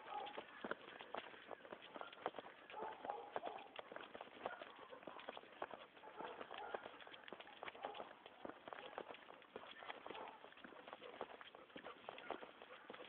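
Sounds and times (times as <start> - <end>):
footsteps on brick paving: 0.0 - 13.0.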